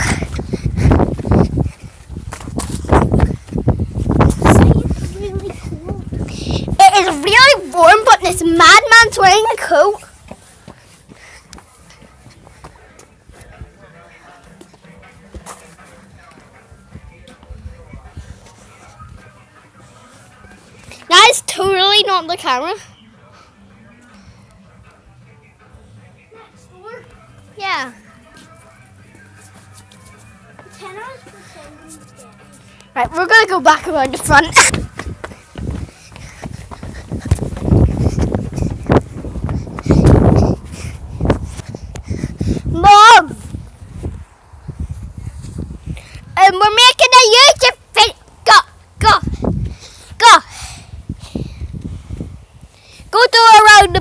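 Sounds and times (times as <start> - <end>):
faint voices: 0.0 - 44.5.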